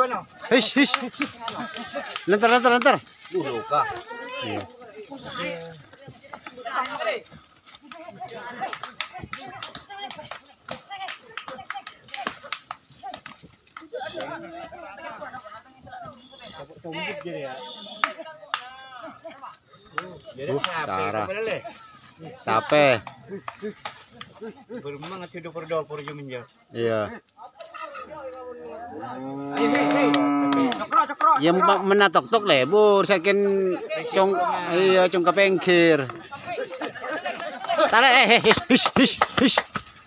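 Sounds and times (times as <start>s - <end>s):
bull bellowing: 28.8s - 30.8s
bull horns clashing: 29.2s - 33.3s.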